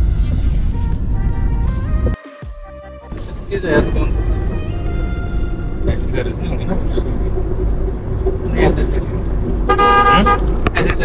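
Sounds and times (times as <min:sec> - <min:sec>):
low rumble of road traffic: 0:03.6 - 0:11.0
vehicle horn blast: 0:09.7 - 0:10.6.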